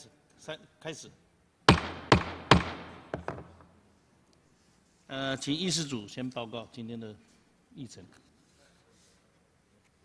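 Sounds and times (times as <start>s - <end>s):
wooden gavel knocking on desk: 1.7s - 3.6s.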